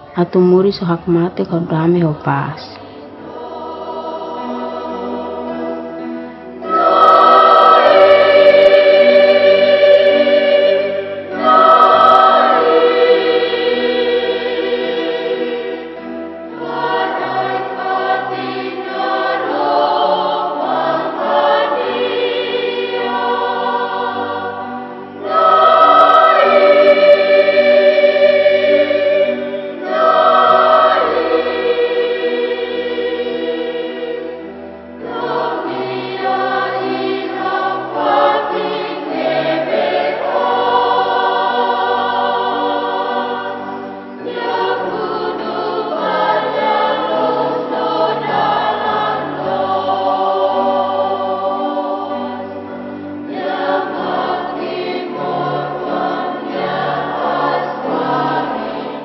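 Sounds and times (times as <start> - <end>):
choir singing held chords: 1.3 - 59.0.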